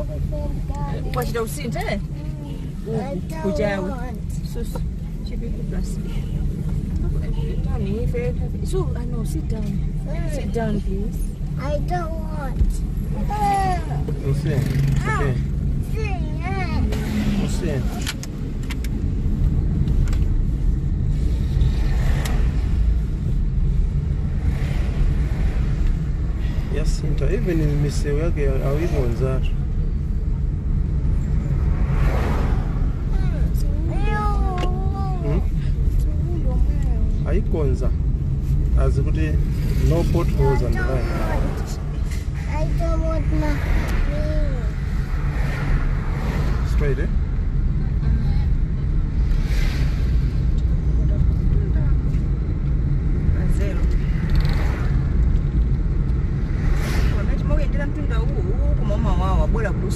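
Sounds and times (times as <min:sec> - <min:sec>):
car driving rumble: 0:00.0 - 0:59.9
passing traffic rushing: 0:00.0 - 0:59.9.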